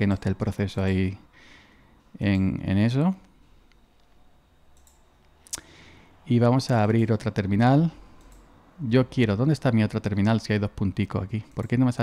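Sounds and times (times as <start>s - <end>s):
faint computer clicks: 3.2s - 5.7s, 8.2s - 8.5s.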